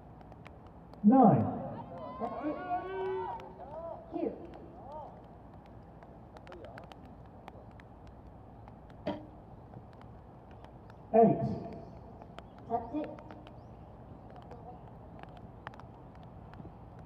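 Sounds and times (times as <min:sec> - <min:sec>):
faint clicks: 0:00.1 - 0:17.0.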